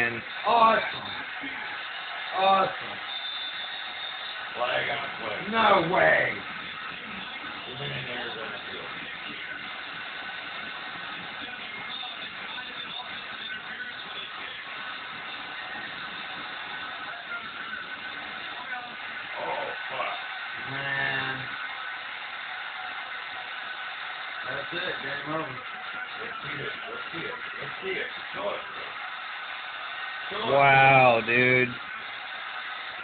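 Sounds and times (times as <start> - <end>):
stadium crowd noise: 0.0 - 33.0
music: 1.1 - 30.3.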